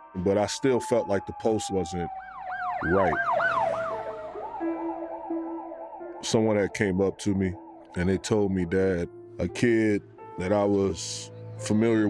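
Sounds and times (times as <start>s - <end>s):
siren yelping: 0.0s - 8.0s.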